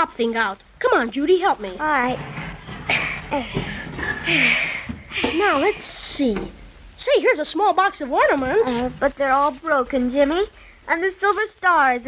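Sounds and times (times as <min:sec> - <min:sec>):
breathy puff of air: 0:02.9 - 0:05.6, 0:10.5 - 0:10.9
children grunting with effort: 0:02.9 - 0:05.8.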